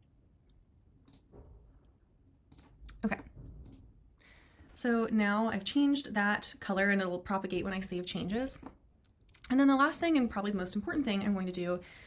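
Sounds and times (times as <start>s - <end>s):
computer mouse clicks: 1.0s - 1.3s, 2.5s - 3.0s, 3.6s - 3.9s.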